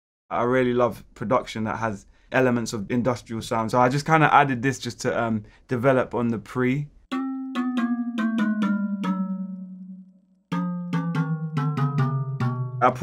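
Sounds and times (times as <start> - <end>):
metallic bell-like keyboard notes: 7.1 - 13.0.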